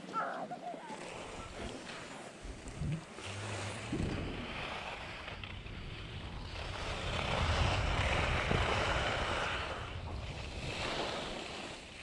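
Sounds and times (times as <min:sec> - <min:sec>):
skis scraping over snow: 0:00.9 - 0:12.0
wind buffeting microphone: 0:02.4 - 0:12.0.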